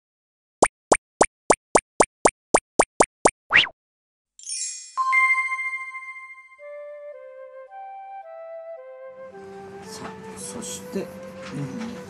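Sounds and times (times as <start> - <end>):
cartoon pops: 0.6 - 3.8.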